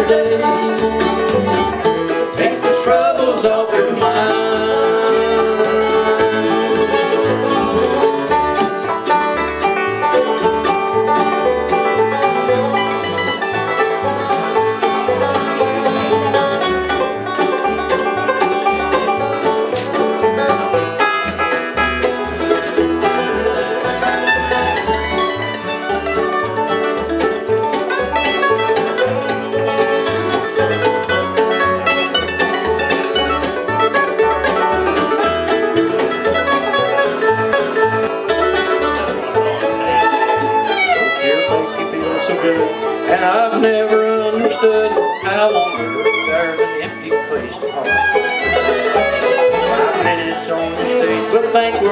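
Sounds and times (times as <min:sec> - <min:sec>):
acoustic guitar: 0:00.0 - 0:51.9
banjo: 0:00.0 - 0:51.9
fiddle: 0:00.0 - 0:51.9
mandolin: 0:00.0 - 0:51.9
upright bass low notes: 0:00.0 - 0:51.9.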